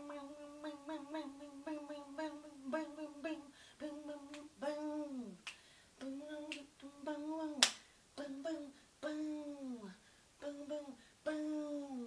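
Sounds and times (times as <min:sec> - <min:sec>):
woman singing wordless notes: 0:00.0 - 0:12.0.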